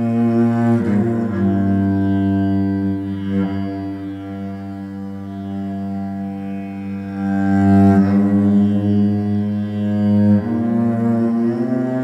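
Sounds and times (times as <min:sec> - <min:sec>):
cello drone: 0:00.0 - 0:12.0.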